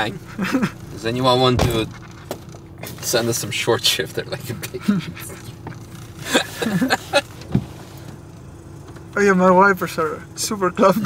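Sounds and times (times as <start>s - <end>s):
car engine idling from inside: 0.0s - 11.0s.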